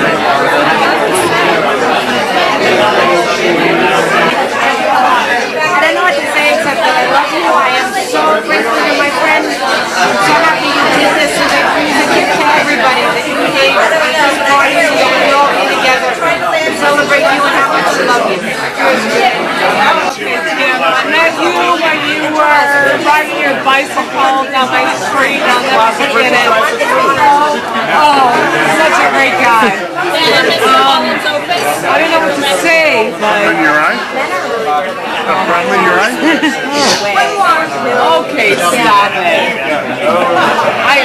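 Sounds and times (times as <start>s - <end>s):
crowd chatter: 0.0s - 41.0s
woman talking: 21.2s - 33.2s, 36.2s - 39.5s
woman speaking: 28.0s - 31.2s.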